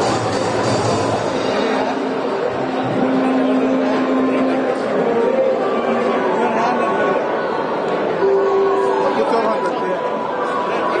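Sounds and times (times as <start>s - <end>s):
chatter of overlapping voices: 0.0s - 11.0s.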